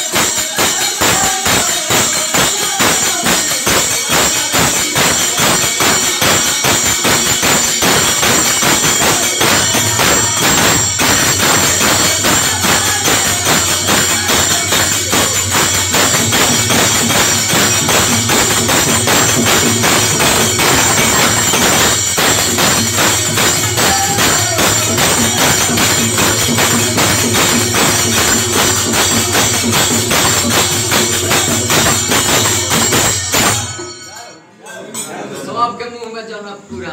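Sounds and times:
hand claps: 0:00.0 - 0:34.1
barrel drum: 0:00.0 - 0:34.2
hand cymbals clashing: 0:00.0 - 0:35.2.

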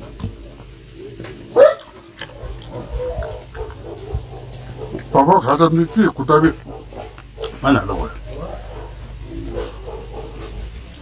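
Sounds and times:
pig grunting: 0:02.2 - 0:10.6.

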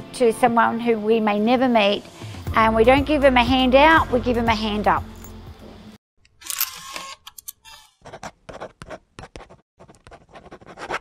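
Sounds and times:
camera shutter clicks: 0:06.4 - 0:07.8.

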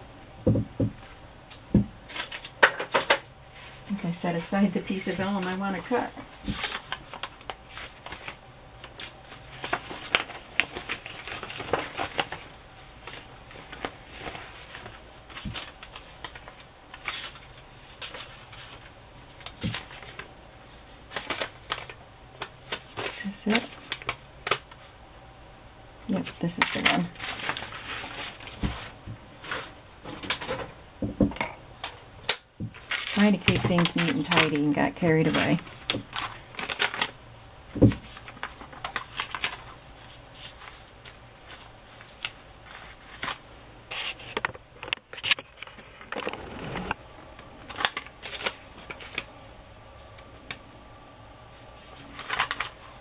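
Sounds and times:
paper rustling and flapping: 0:00.4 - 0:25.0, 0:26.1 - 0:31.2, 0:31.8 - 0:49.4, 0:51.5 - 0:53.0.

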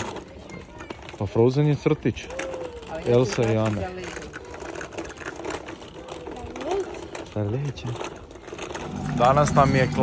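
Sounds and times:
scooter wheels rattling on pavement: 0:00.0 - 0:10.0.

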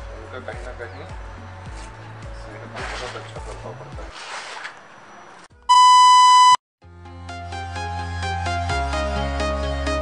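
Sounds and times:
music: 0:00.0 - 0:04.2, 0:06.8 - 0:10.0
loud electronic bleep: 0:05.7 - 0:06.6.

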